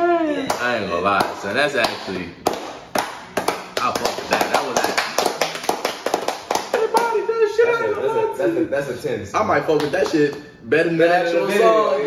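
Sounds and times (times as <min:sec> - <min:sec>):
people clapping: 0:00.5 - 0:07.6, 0:09.7 - 0:10.4.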